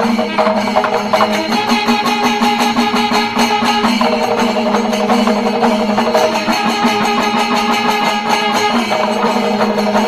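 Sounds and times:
drums beaten in fast rhythm: 0.0 - 10.0.

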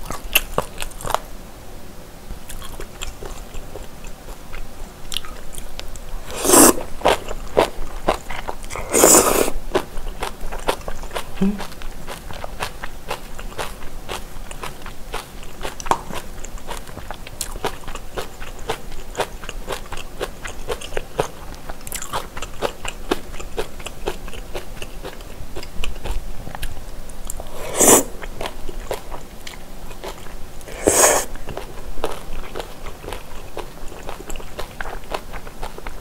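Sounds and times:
wet chewing and biting: 2.5 - 36.0.

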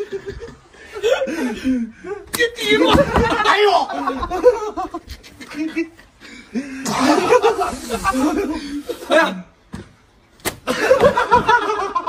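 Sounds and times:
men chuckling and laughing: 0.0 - 9.1, 10.6 - 12.0.

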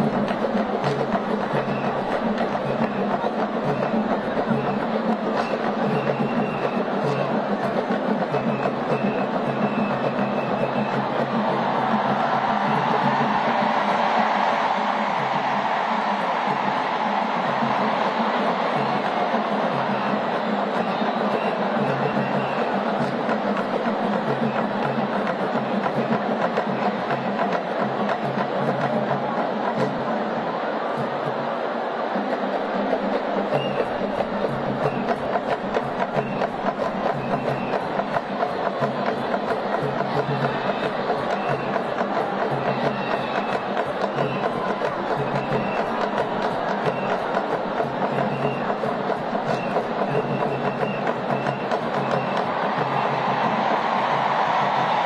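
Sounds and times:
drumming: 0.0 - 55.0
voices singing: 0.0 - 55.0.

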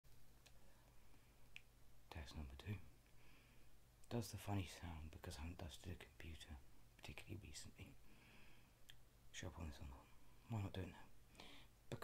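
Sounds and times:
low steady hum: 0.1 - 12.0.

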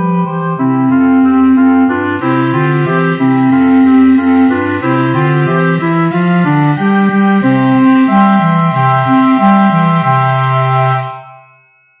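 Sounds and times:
woodwind chord: 0.0 - 11.4
ratchet rattling: 2.2 - 11.2.

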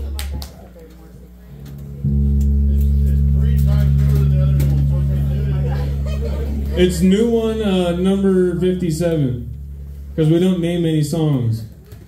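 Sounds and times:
guitar amplifier humming: 0.0 - 12.0.

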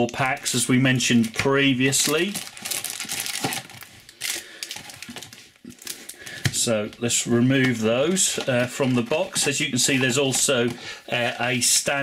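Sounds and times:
foil packs rustling and crinkling: 0.0 - 12.0.

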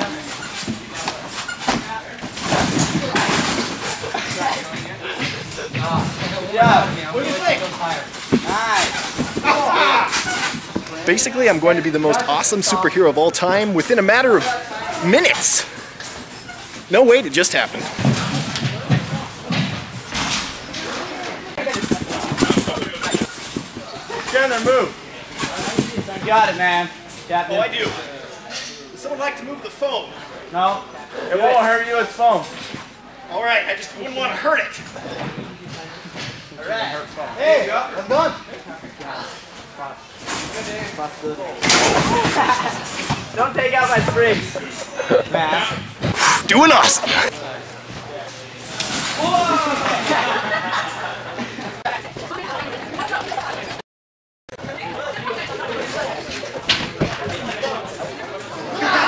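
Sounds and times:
person speaking: 46.2 - 47.3.

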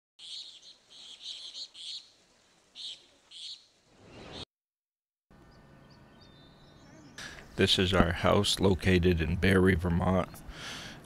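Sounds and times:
faint outdoor ambience: 0.2 - 4.4, 5.3 - 11.0
birds chirping: 0.2 - 4.5, 5.3 - 11.0.

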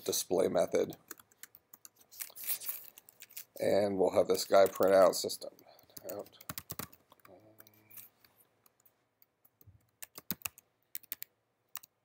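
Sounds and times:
keyboard keystrokes clicking: 6.0 - 7.7, 9.6 - 11.9.

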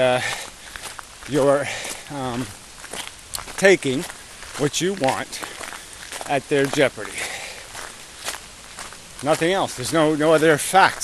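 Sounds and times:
footsteps outdoors: 0.0 - 11.0.

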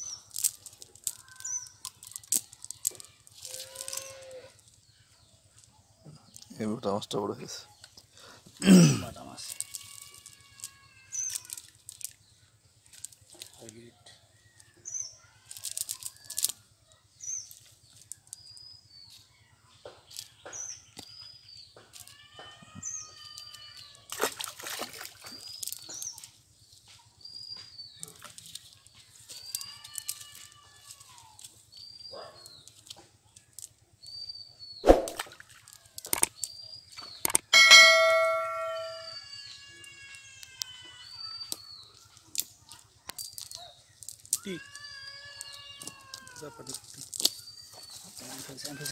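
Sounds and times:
cast net rustling and clicking: 0.0 - 4.8, 9.4 - 12.2, 12.8 - 13.8, 15.5 - 16.6, 28.0 - 33.7, 35.0 - 38.9, 41.5 - 48.9
bird chirping: 36.3 - 46.6
brief ringing tone: 37.5 - 39.2.

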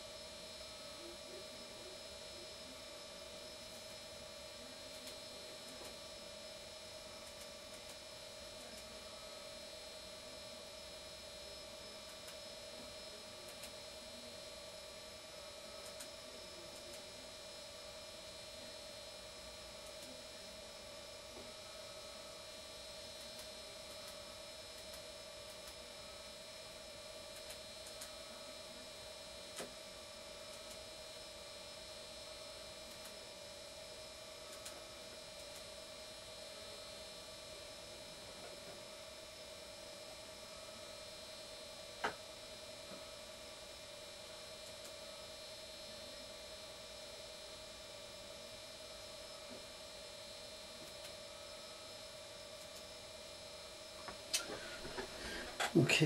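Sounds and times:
electronic hum and whine: 0.0 - 56.0
faint clicks: 27.4 - 28.2.

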